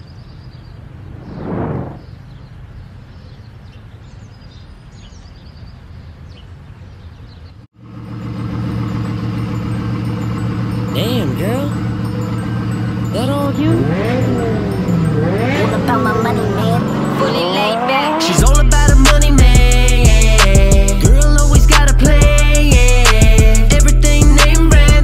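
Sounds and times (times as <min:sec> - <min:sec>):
birds chirping: 0:00.0 - 0:18.4
car driving past: 0:01.0 - 0:02.3
rap beat with heavy bass: 0:13.2 - 0:25.0.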